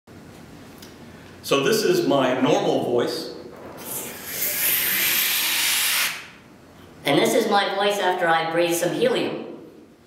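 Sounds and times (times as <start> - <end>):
hissing inhale of helium: 3.8 - 6.3.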